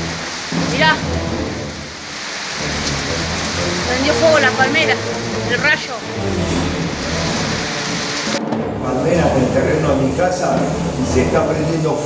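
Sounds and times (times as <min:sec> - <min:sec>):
steady rain: 0:00.0 - 0:12.0
thunder rumbling: 0:00.0 - 0:12.0.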